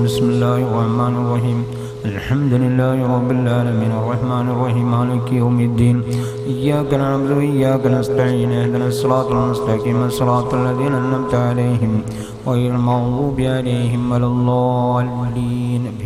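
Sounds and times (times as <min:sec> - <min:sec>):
devotional chanting: 0:00.0 - 0:16.0
steady low drone note: 0:00.0 - 0:16.0.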